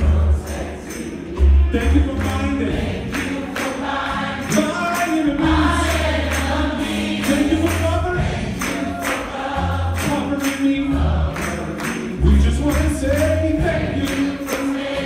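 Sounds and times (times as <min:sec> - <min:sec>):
band accompaniment: 0:00.0 - 0:15.0
gospel choir singing: 0:00.0 - 0:15.0.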